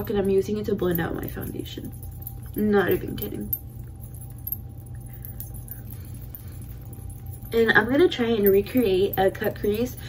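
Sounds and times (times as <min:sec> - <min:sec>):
beaded bracelets jingling: 0:00.0 - 0:10.0
steady low hum: 0:00.0 - 0:10.0.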